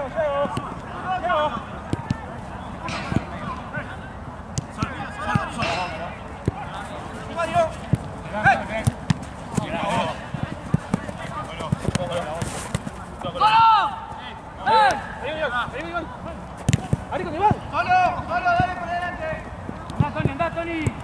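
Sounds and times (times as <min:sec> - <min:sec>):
players shouting: 0:00.0 - 0:12.4, 0:13.1 - 0:21.0
ball being kicked: 0:16.6 - 0:17.6.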